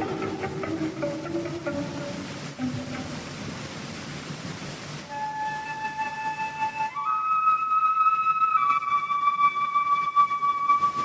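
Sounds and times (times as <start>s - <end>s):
faint instrument notes: 0.0s - 3.7s, 5.1s - 11.0s
tape hiss: 0.0s - 11.0s.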